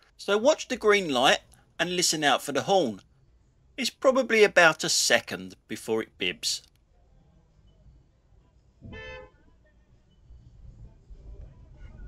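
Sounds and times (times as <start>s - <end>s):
low rumble of traffic: 6.9s - 12.0s
car horn toot: 8.8s - 9.4s.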